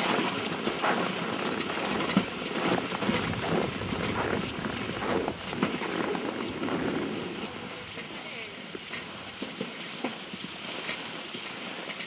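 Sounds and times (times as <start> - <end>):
footsteps crunching on snow: 0.8 - 11.2.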